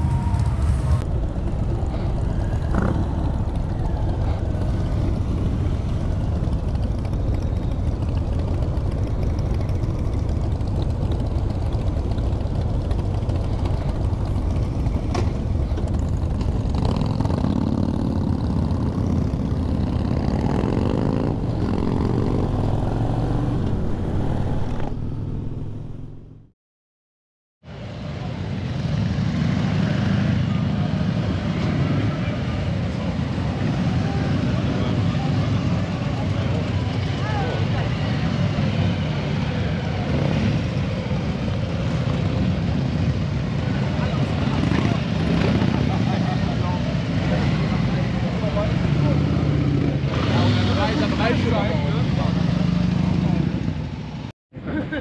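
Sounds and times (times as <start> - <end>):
motorcycle engine accelerating: 0.0 - 26.5
motorcycle engines at low speed: 0.0 - 26.5, 27.7 - 55.0.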